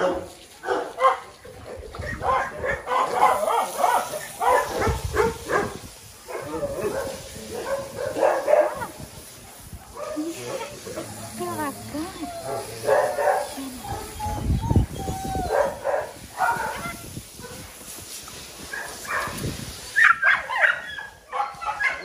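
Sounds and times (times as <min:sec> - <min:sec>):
dogs barking and whining: 0:00.0 - 0:17.6, 0:20.0 - 0:22.0.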